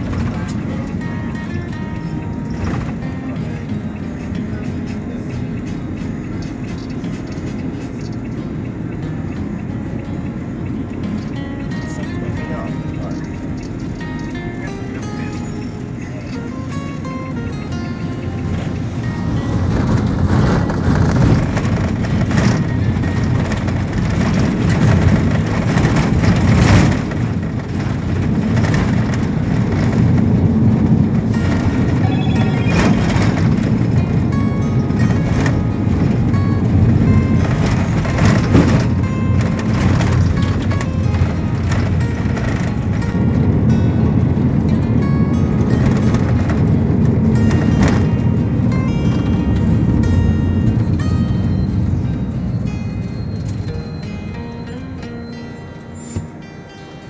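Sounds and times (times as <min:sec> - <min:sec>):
music: 0:00.0 - 0:57.0
vehicle driving on road: 0:00.0 - 0:57.0.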